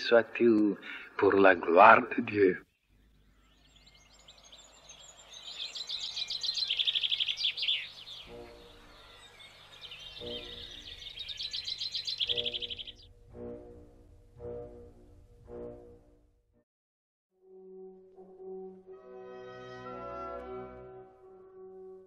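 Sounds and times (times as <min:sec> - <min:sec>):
songbirds trilling: 0:02.7 - 0:13.1.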